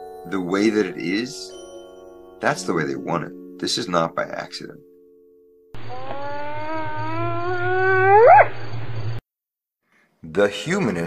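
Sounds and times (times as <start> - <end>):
animal howl: 5.8 - 8.6.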